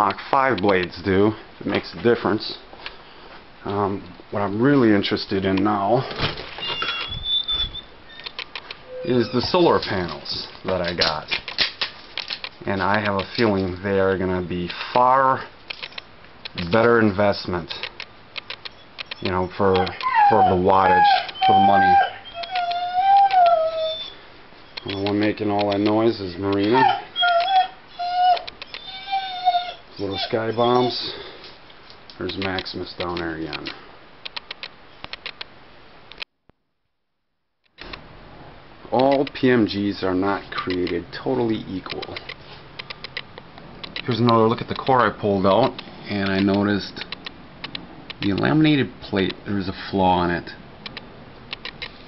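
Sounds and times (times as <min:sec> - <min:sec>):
thin high squeak: 0:06.6 - 0:10.0
dog whining: 0:06.7 - 0:10.2, 0:18.7 - 0:25.3, 0:26.6 - 0:31.3
faint clicks: 0:17.7 - 0:20.2, 0:24.7 - 0:26.7, 0:31.7 - 0:35.5, 0:39.0 - 0:39.4, 0:41.9 - 0:48.5, 0:50.8 - 0:52.0.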